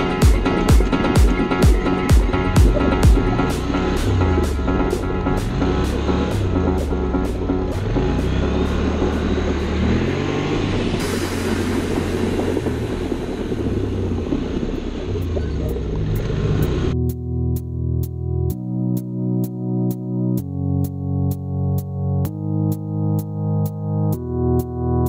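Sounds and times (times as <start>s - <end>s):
music with steady beat: 0.0s - 13.4s, 16.2s - 25.0s
atv engine revving: 1.8s - 17.0s.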